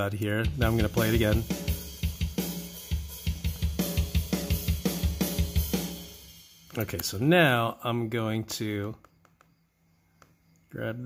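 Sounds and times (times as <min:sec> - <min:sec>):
hi-hat: 0:00.0 - 0:06.7
snare drum: 0:00.4 - 0:06.1.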